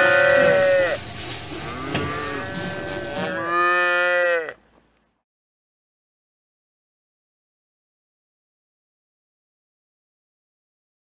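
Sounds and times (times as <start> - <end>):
calves bawling: 0.0 - 4.6.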